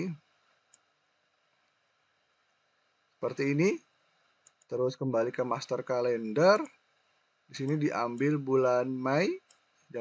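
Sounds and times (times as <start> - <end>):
computer mouse click: 0.7 - 0.9, 4.4 - 4.7
person speaking: 3.2 - 3.8, 4.7 - 6.7, 7.5 - 10.0.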